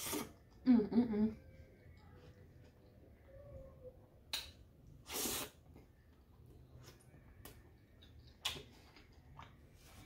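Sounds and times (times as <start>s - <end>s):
mouth eating noises: 0.0s - 0.7s, 4.9s - 9.7s.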